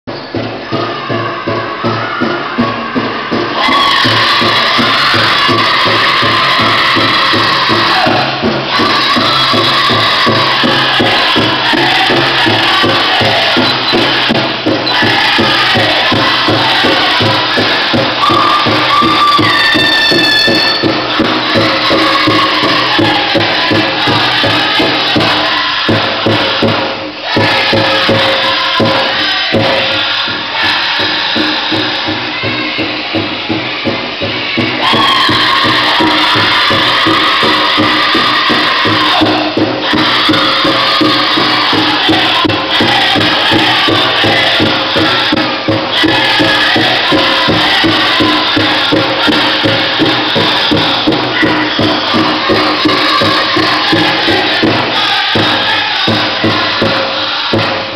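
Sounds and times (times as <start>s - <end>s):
steady drumbeat: 0.1s - 57.9s
group singing: 0.2s - 57.9s.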